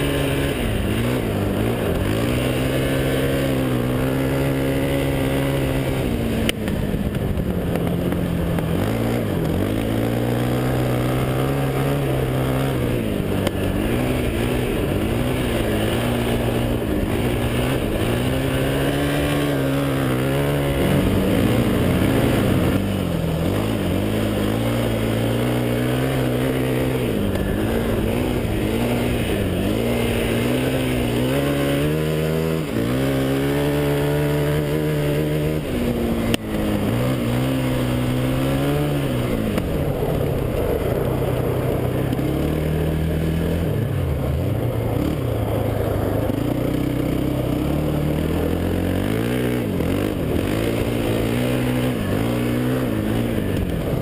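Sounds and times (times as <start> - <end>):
quad engine revving: 0.0 - 54.0.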